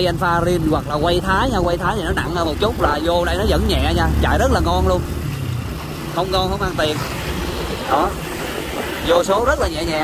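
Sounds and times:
motorcycle engine running: 0.0s - 10.0s
road noise: 0.0s - 10.0s.

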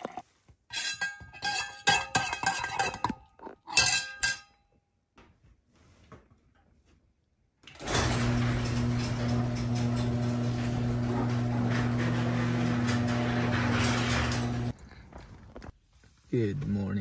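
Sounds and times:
garage door motor hum: 7.7s - 14.8s
garage door rattling up: 7.7s - 14.8s.

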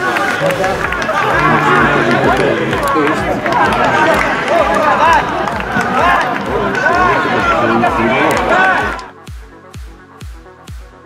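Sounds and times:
men shouting and cheering: 0.0s - 9.2s.

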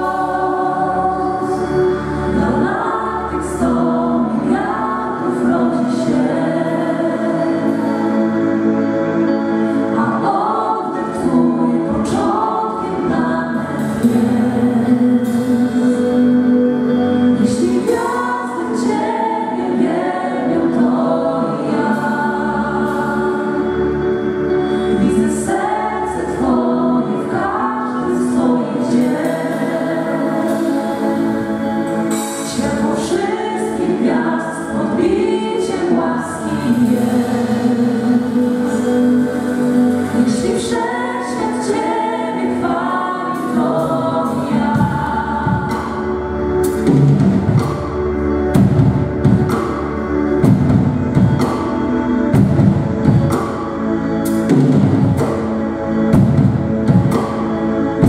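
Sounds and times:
vocal group singing in harmony: 0.0s - 58.0s.

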